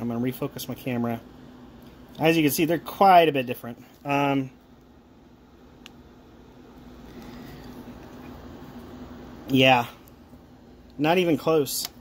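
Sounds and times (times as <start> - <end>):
faint hum and hiss: 0.0 - 12.0.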